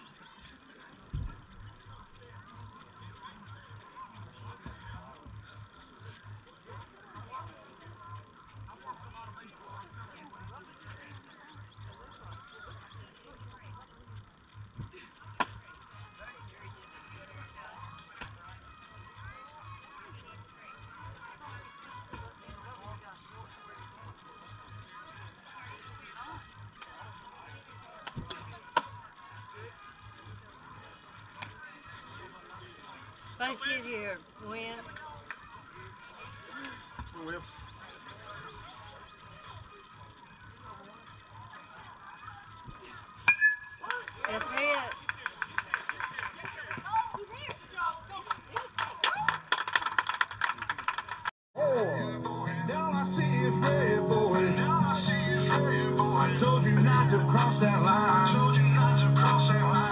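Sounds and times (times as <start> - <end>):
low pulsing hum: 0.0 - 34.9
faint distant voices: 0.0 - 50.5.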